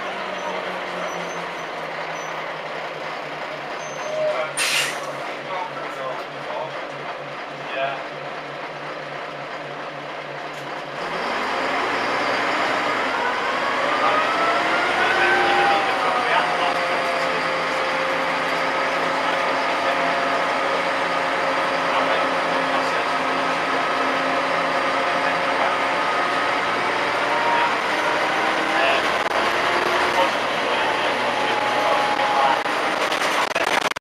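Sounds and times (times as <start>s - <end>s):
bus engine: 0.0s - 34.0s
air hiss: 4.6s - 5.1s.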